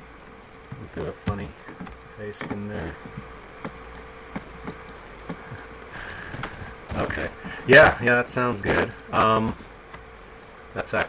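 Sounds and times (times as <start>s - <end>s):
faint electrical buzz: 0.0s - 11.0s.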